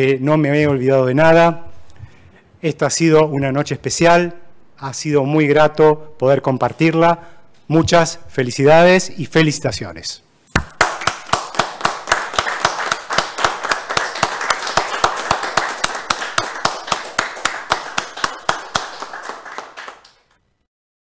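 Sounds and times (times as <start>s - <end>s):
close rapid claps: 10.6s - 20.4s
group hand clapping: 10.6s - 20.4s.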